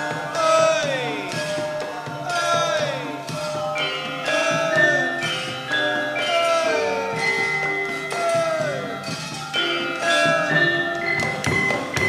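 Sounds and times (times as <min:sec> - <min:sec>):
struck metallophones ringing: 0:00.0 - 0:12.0.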